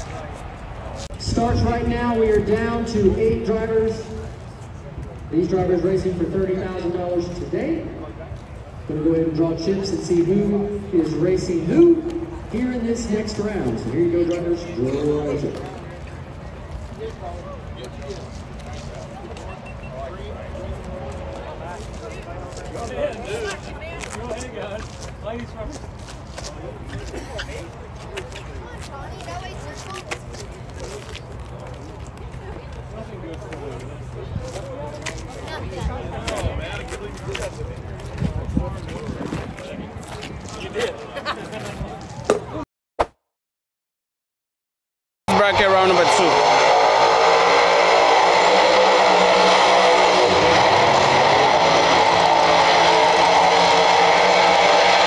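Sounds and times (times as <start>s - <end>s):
indistinct chatter of people: 0.0s - 42.6s.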